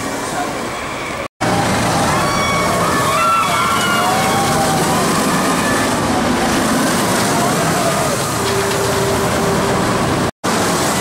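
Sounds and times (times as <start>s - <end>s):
roller coaster rumbling on track: 0.0s - 11.0s.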